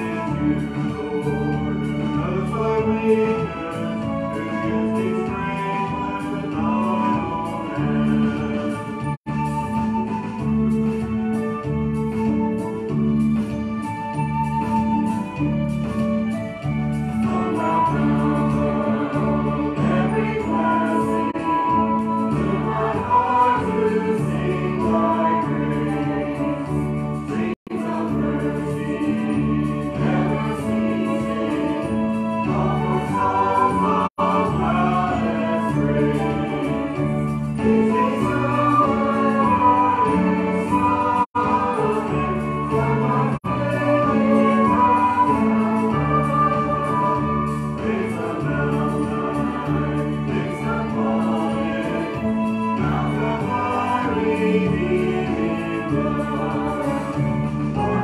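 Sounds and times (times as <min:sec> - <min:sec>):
choir singing sustained notes: 0:00.0 - 0:11.4, 0:15.9 - 0:58.0.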